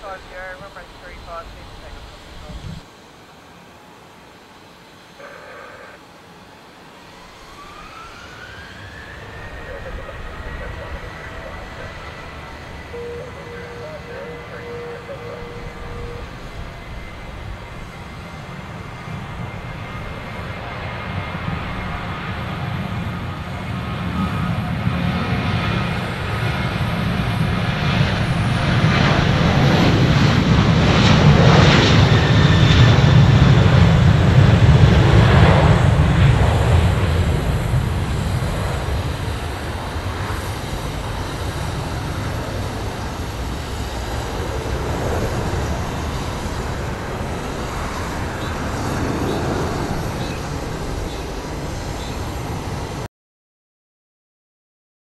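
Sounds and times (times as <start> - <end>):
jet engines at takeoff: 0.0 - 53.1.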